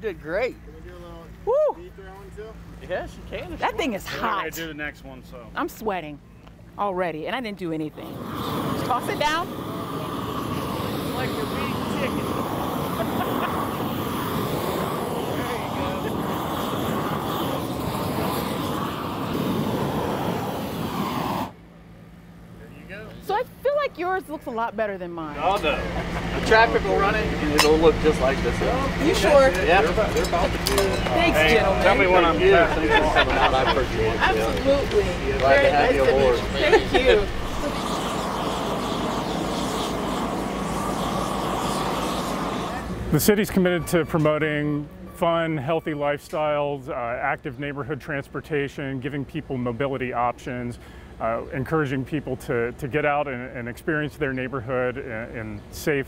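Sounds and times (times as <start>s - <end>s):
propane torch burning: 0.8s - 56.0s.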